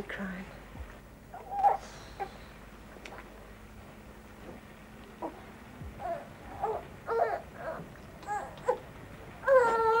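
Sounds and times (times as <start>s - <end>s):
infant crying: 6.0s - 8.8s, 9.4s - 10.0s.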